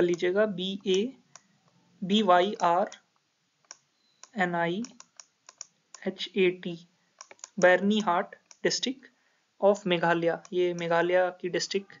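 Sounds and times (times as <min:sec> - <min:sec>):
person speaking: 0:00.0 - 0:03.1, 0:04.2 - 0:05.1, 0:06.0 - 0:12.0
pen clicks: 0:03.6 - 0:06.1, 0:07.2 - 0:07.8, 0:08.4 - 0:08.7.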